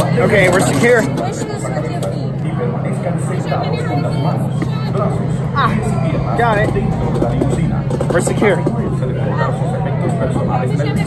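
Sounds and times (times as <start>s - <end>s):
indistinct voices and chatter: 0.0s - 11.0s
steady low hum: 0.0s - 11.0s.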